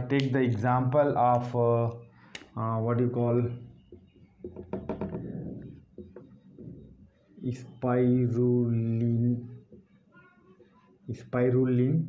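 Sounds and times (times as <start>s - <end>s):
marker tapping on whiteboard: 3.8s - 6.9s, 9.6s - 10.0s.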